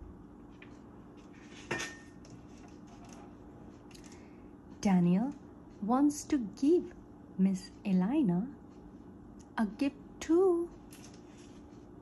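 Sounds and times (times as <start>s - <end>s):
soft paper handling: 10.9s - 11.8s.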